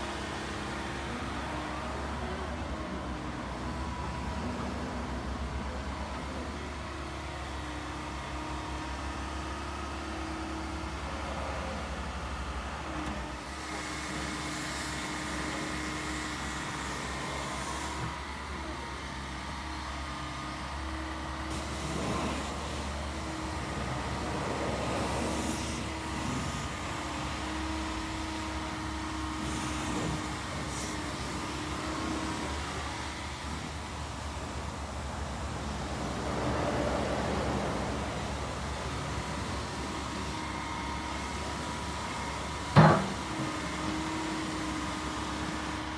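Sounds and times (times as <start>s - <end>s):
diesel engine hum: 0.0s - 45.9s.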